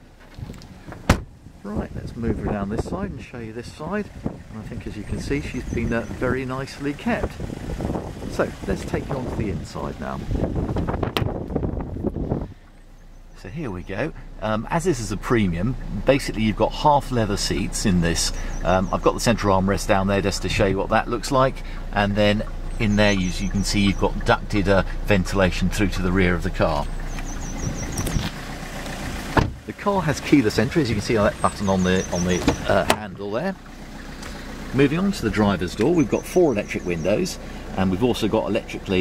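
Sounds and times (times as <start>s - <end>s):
wind buffeting microphone: 0.3s - 12.7s, 26.6s - 29.7s
car door latch click: 0.5s - 1.3s, 29.3s - 29.6s, 32.3s - 33.0s.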